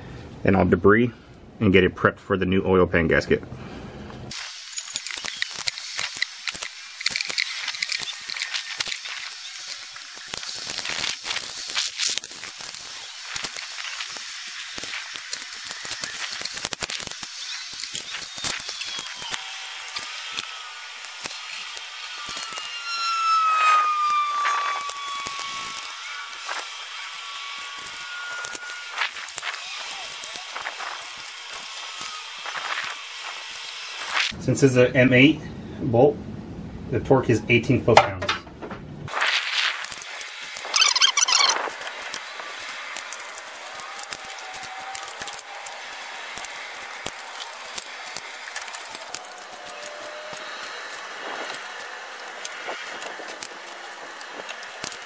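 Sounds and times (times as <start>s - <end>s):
tool scraping metal: 4.3s - 31.7s
brief falling squeal: 22.4s - 26.3s, 40.7s - 41.6s.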